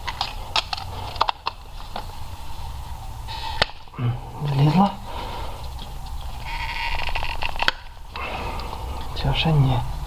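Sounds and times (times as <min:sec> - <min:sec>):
hoses creaking being pried loose: 0:05.8 - 0:08.0.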